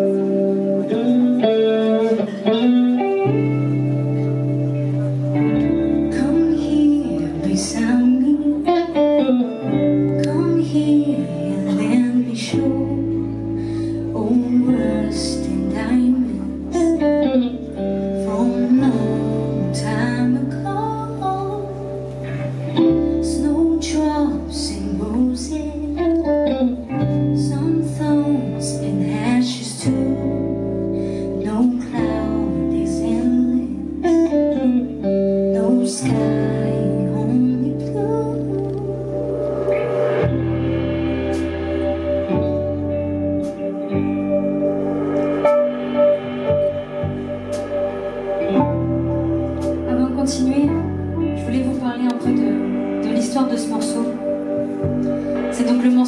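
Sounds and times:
drums: 0:00.0 - 0:56.0
electric guitars: 0:00.0 - 0:56.0
sustained bass notes: 0:00.0 - 0:56.0
woman singing: 0:05.6 - 0:39.7, 0:49.8 - 0:56.0.

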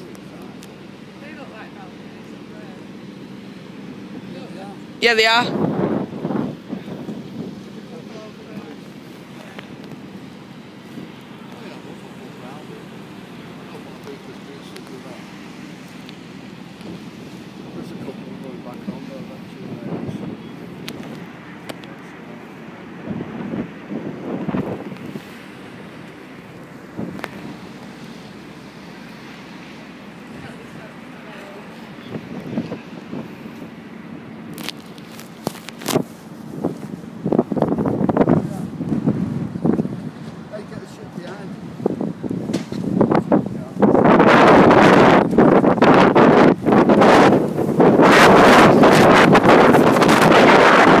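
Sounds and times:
wind buffeting microphone: 0:03.6 - 0:51.0.

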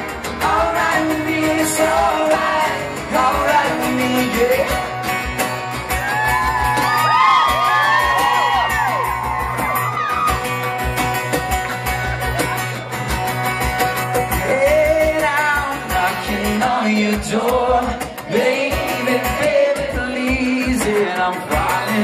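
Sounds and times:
strummed acoustic guitar: 0:00.0 - 0:22.0
man singing: 0:00.3 - 0:05.1, 0:14.3 - 0:22.0.

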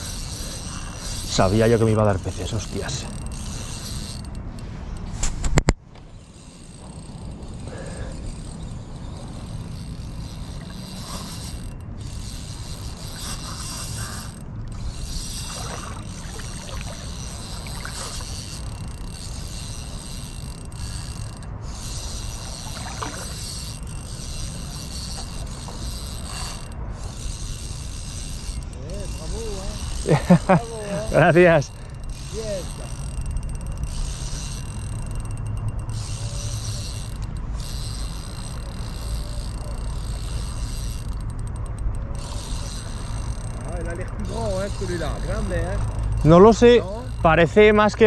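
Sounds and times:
spinning reel being cranked: 0:00.0 - 0:05.3, 0:06.1 - 0:48.0.

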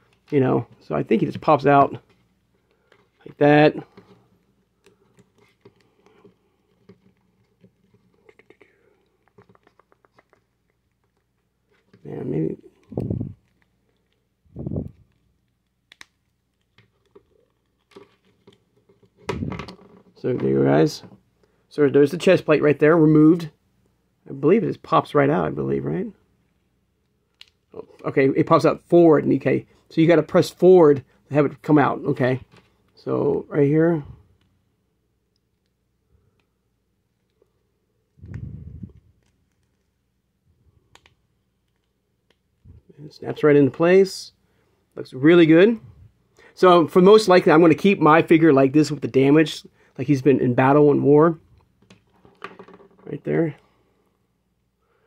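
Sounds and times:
plastic parts being handled: 0:00.0 - 0:20.6.

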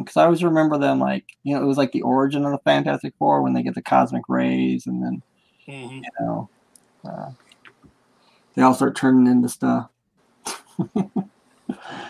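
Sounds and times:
person laughing: 0:10.5 - 0:12.0.

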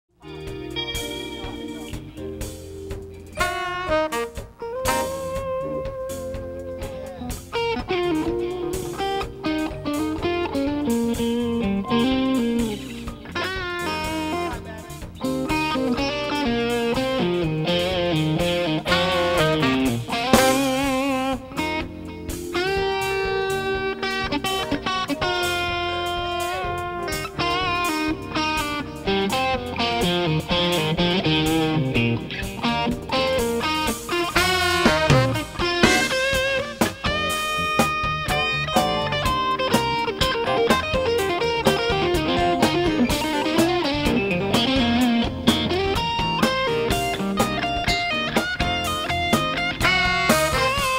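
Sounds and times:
electric guitar solo: 0:00.2 - 0:50.9
live band playing: 0:00.2 - 0:50.9.

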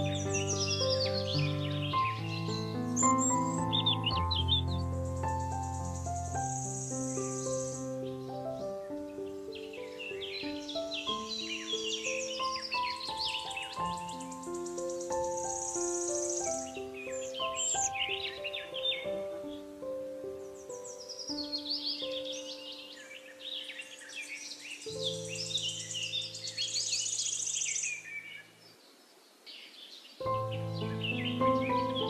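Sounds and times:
soft piano melody: 0:00.0 - 0:28.7, 0:30.2 - 0:32.0
birds chirping and trilling: 0:00.0 - 0:32.0.

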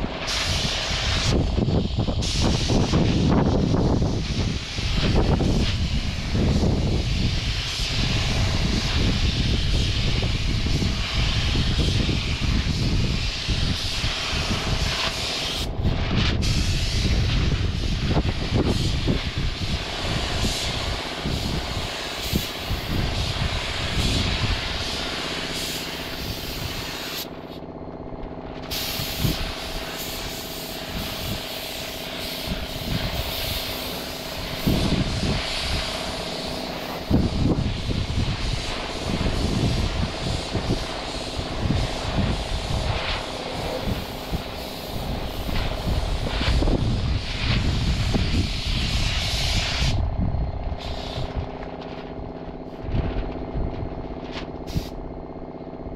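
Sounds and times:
paint spray gun hissing: 0:00.0 - 0:50.0, 0:50.7 - 0:55.5
steady machine hum: 0:00.0 - 0:55.9.

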